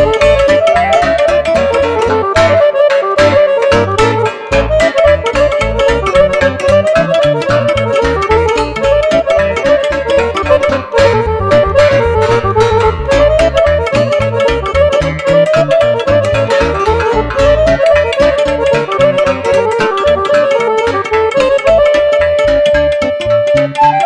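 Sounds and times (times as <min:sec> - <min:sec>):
accordion: 0:00.0 - 0:24.0
cimbalom: 0:00.0 - 0:24.0
clarinet: 0:00.0 - 0:24.0
keyboard: 0:00.0 - 0:24.0
steady pulsing beat: 0:00.0 - 0:24.0.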